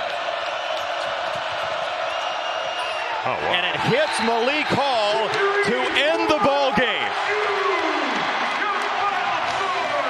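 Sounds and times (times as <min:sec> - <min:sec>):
arena crowd roaring and cheering: 0:00.0 - 0:10.0
loud shouting voices: 0:03.0 - 0:10.0.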